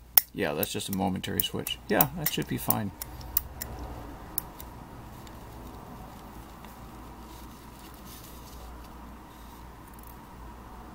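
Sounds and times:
low room hum: 0.0 - 10.9.

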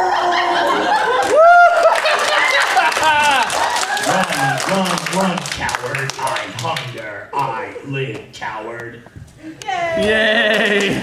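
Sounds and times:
audience laughing: 0.0 - 5.0
scattered clapping: 1.2 - 7.6.

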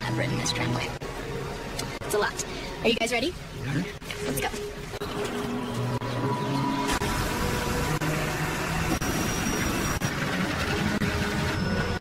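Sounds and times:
cable machinery rumble and hum: 0.0 - 12.0.

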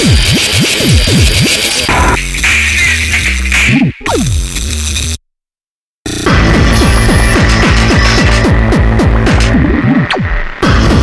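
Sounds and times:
harsh electronic music: 0.0 - 5.2, 6.1 - 11.0.

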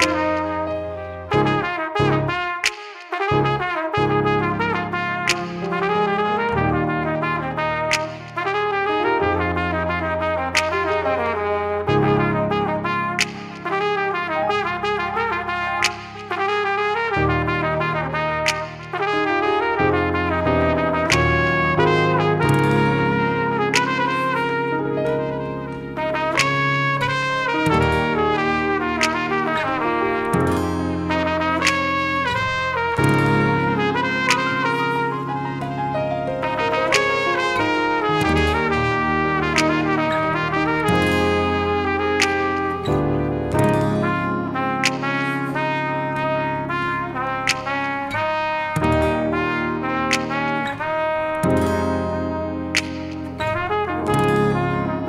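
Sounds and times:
flugelhorn melody: 0.0 - 55.0
light beat: 0.0 - 55.0
sustained keyboard chords: 0.0 - 55.0.

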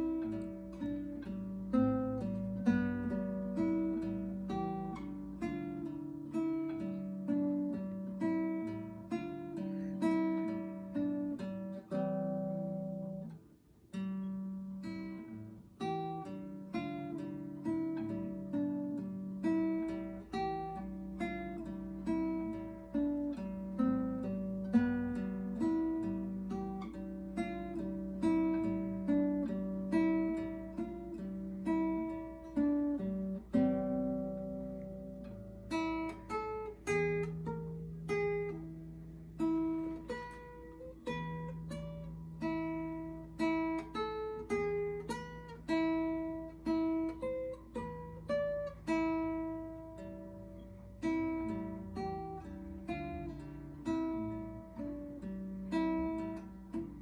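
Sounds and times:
classical guitar waltz: 0.0 - 57.0.

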